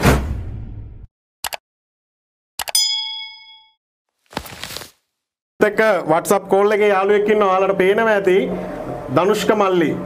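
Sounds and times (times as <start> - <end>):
bright bell ding: 2.7 - 3.8.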